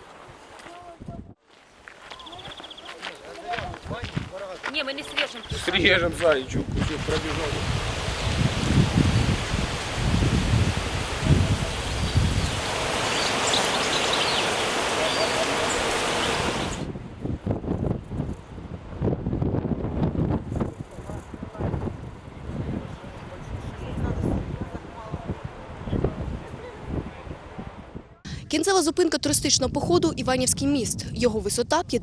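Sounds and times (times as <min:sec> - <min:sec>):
wind noise on microphone: 0:00.0 - 0:01.4, 0:03.6 - 0:04.4, 0:05.4 - 0:28.6, 0:29.2 - 0:32.0
faint outdoor sounds: 0:00.0 - 0:08.6.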